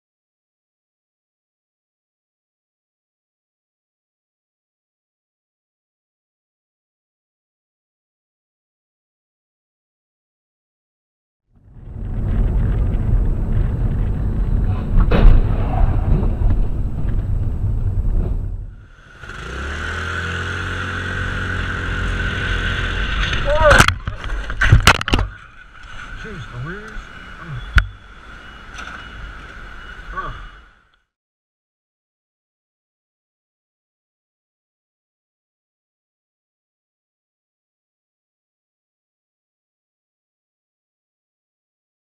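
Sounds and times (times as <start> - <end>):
low road rumble: 11.5 - 31.0
sharp crack: 14.6 - 18.6
sharp bangs or impacts: 14.7 - 18.8
motorcycle running with whine: 18.7 - 30.9.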